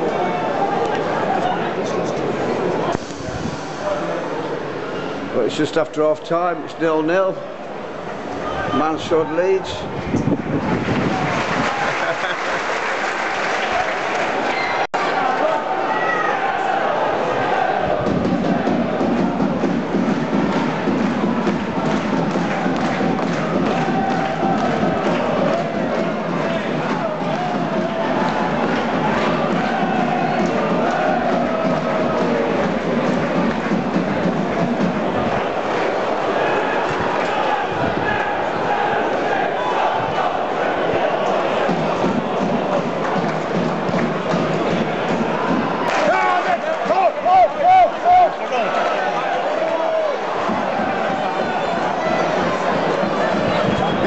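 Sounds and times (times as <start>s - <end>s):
crowd singing and chanting: 16.4s - 54.0s.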